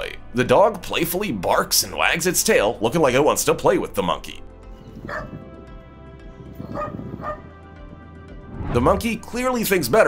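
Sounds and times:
background music: 0.0s - 10.0s
dog barking: 5.0s - 5.4s, 6.6s - 7.5s.

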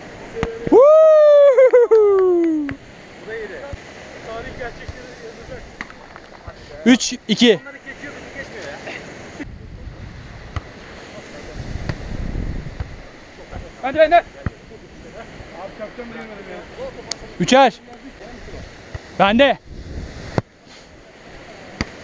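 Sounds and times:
surf: 0.0s - 22.0s
wind buffeting microphone: 8.1s - 17.4s, 18.1s - 20.4s.

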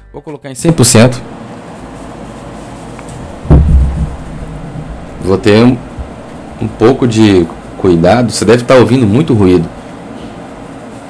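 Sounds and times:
loud microphone background noise: 0.6s - 11.0s
low rumbling thud: 3.2s - 6.6s.

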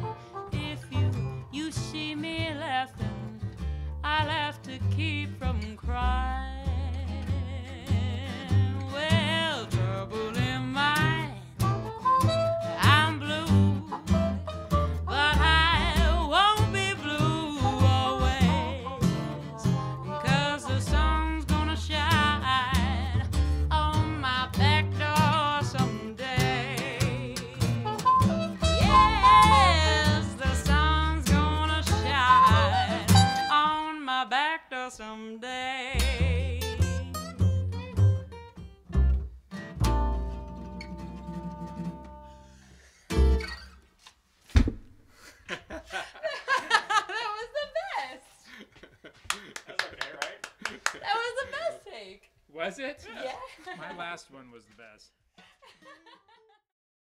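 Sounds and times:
upright bass: 0.0s - 33.6s, 35.9s - 43.8s
strummed acoustic guitar: 0.0s - 33.9s, 36.0s - 43.8s
woman singing: 0.5s - 11.7s, 12.7s - 37.2s
trumpet: 11.6s - 13.4s, 27.8s - 30.4s, 32.3s - 33.7s.

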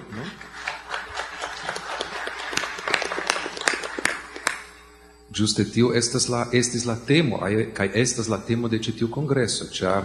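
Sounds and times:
audience applauding: 0.0s - 4.7s.

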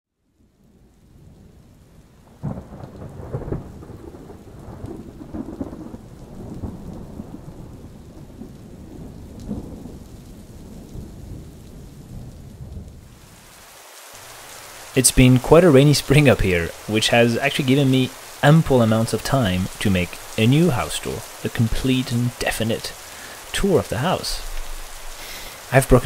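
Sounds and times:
thunder rumbling: 0.6s - 13.5s, 14.2s - 26.0s
rain hissing: 0.6s - 26.0s.

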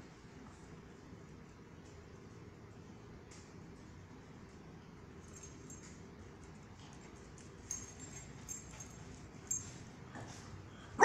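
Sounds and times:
light jingles: 5.1s - 10.6s.

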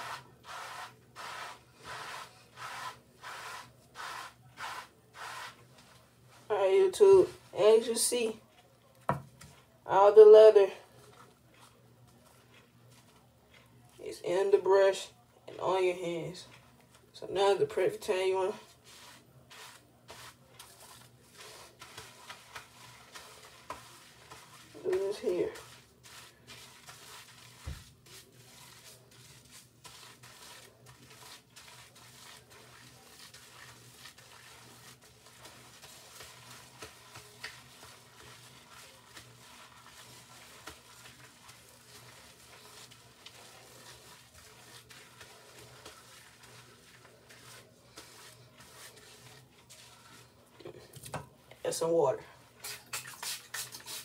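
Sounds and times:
hands squishing soapy lather: 18.8s - 50.4s, 52.5s - 54.0s.

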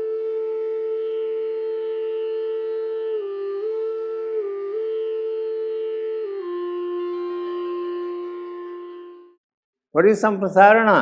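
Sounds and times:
flute long steady note: 0.0s - 9.4s.

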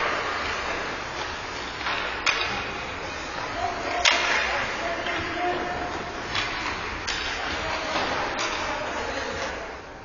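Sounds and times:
hockey stick crack: 0.0s - 8.8s
rink background noise: 0.0s - 10.0s.

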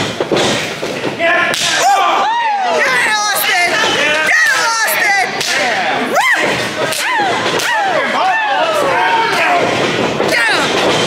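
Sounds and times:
spectators yelling: 1.2s - 11.0s.

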